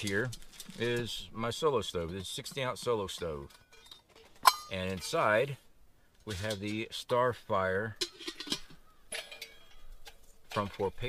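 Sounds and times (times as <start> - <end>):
metal pot and lid clinking: 1.8 - 5.4, 7.9 - 11.0.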